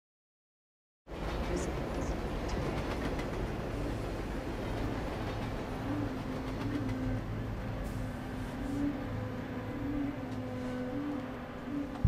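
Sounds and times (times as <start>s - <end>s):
train rumbling on rails: 1.1s - 12.0s.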